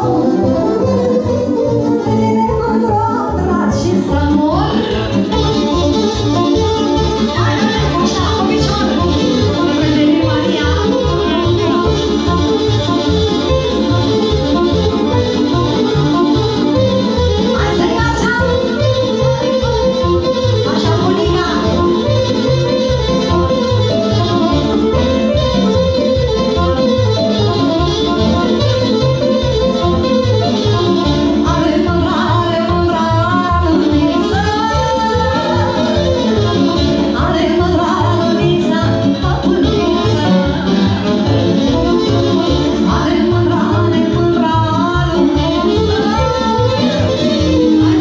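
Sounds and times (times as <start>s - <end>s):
accordion-led folk band: 0.0s - 48.0s
woman singing into microphone: 1.9s - 5.6s, 7.2s - 11.9s, 17.5s - 19.7s, 20.6s - 22.1s, 31.3s - 48.0s
steady bass beat: 4.7s - 15.0s.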